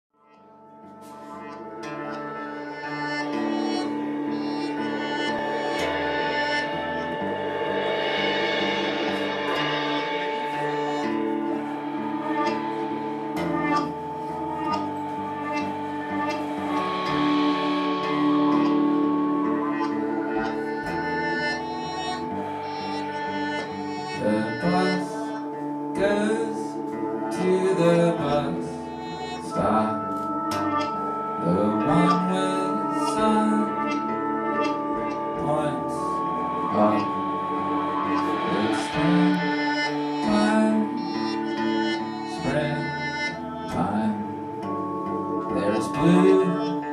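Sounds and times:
acoustic guitar: 0.2 - 46.9
held keyboard notes: 0.2 - 46.9
live band playing: 0.3 - 46.9
drum and cymbal strikes: 1.0 - 46.9.

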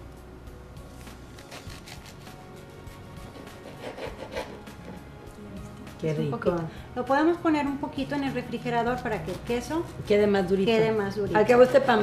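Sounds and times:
soft background music: 0.0 - 12.0
bread crust scraping cutting board: 1.4 - 2.4, 3.2 - 5.0.

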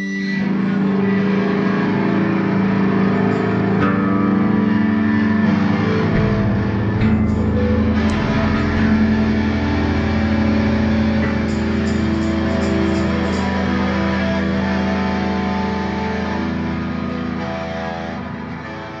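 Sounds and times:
electric guitar held notes: 0.0 - 19.0.

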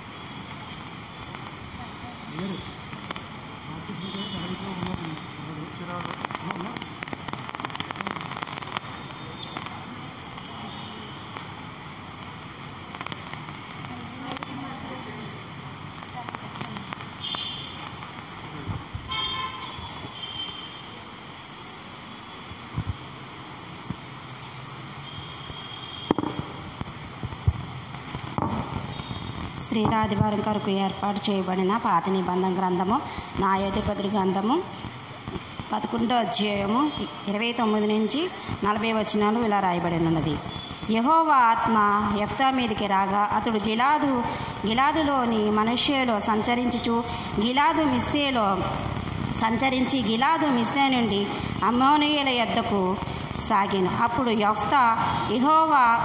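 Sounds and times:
steady hiss: 0.0 - 56.0
clicks and crackles: 6.0 - 10.5, 26.1 - 29.6.

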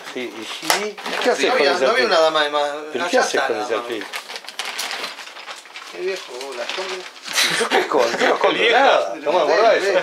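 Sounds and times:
steady room hiss: 0.0 - 10.0.

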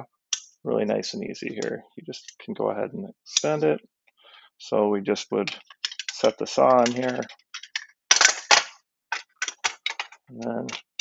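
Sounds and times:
plastic and metal clicks and clacks: 5.4 - 11.0.

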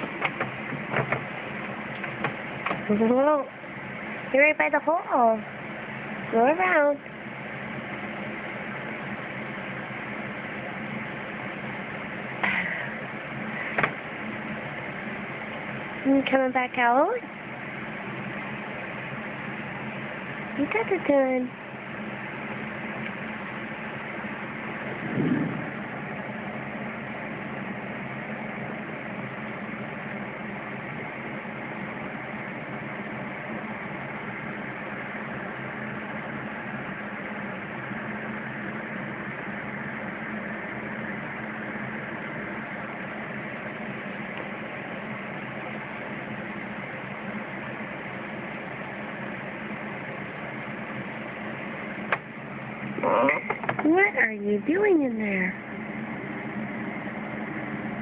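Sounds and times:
machine-like hum: 0.0 - 58.0.

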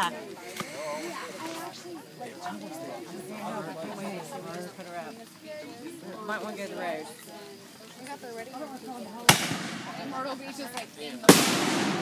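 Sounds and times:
murmur of overlapping voices: 0.0 - 12.0.

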